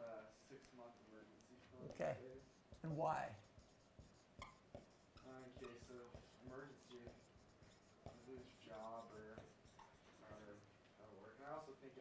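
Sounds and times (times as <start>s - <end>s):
marker writing on a whiteboard: 0.0s - 12.0s.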